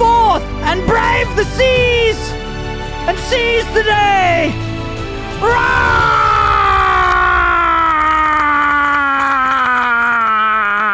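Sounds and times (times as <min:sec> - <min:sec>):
man yelling: 0:05.4 - 0:08.5.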